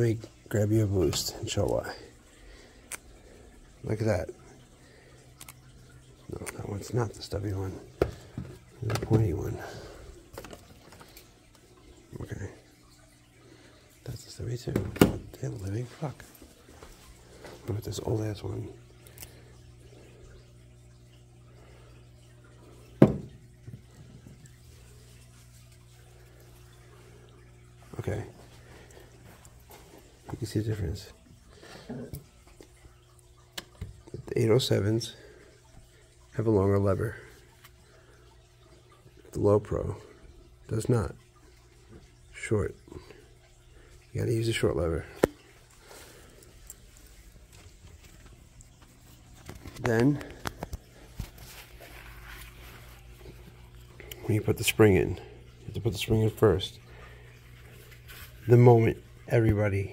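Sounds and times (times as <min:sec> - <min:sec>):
handling noise with small ticks: 0:05.3 - 0:05.7, 0:44.4 - 0:55.1, 0:56.0 - 0:59.6.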